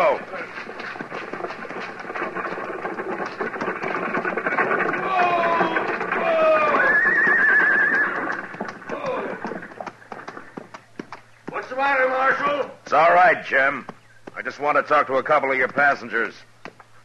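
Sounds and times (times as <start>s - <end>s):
horse hoofbeats: 0.0s - 17.0s.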